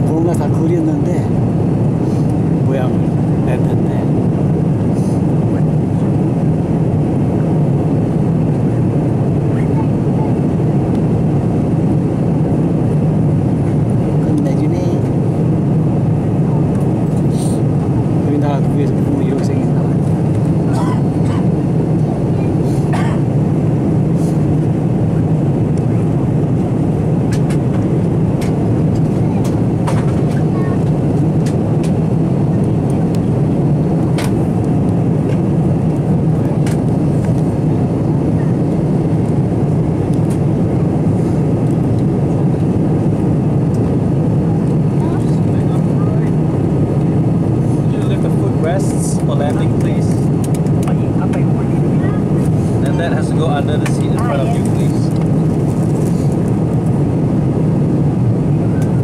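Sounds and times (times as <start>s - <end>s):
jet cabin engine drone: 0.0s - 59.0s.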